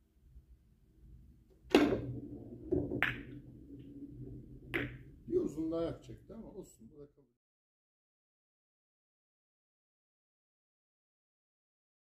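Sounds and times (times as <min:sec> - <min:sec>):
billiard balls clicking: 0:01.5 - 0:05.4.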